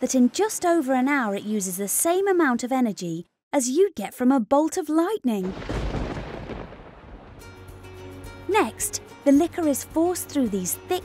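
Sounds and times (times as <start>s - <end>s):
thunder rumbling: 5.4s - 8.0s.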